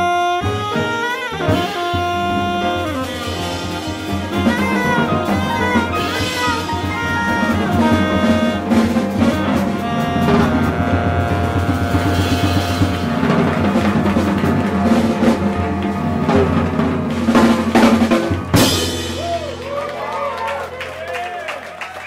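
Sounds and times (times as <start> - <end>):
saxophone long notes: 0.0 - 17.0
jazz quartet playing: 0.0 - 21.0
busy drumming: 0.0 - 22.0.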